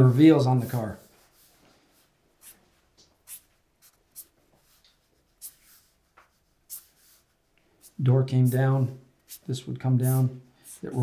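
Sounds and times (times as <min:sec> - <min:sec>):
marker scratching on paper: 0:00.0 - 0:11.0.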